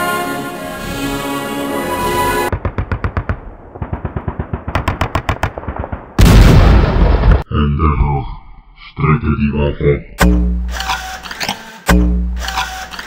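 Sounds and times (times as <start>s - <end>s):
machine-gun fire: 2.5s - 7.4s.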